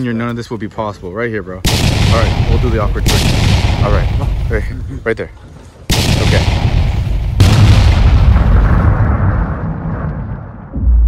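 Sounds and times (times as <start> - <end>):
explosion booms with deep rumble: 1.6 - 5.0, 5.9 - 11.0.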